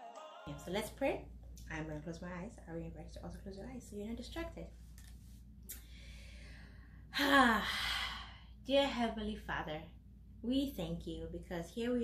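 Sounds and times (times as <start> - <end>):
woman breathing in: 5.8 - 7.1.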